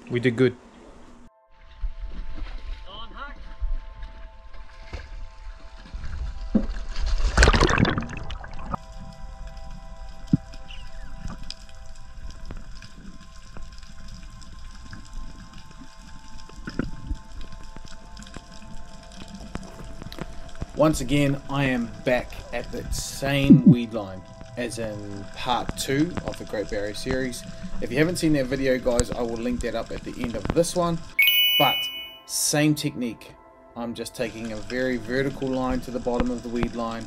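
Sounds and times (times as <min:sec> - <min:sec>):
background music held notes: 0:01.2 - 0:37.0
water sounds: 0:03.4 - 0:32.2.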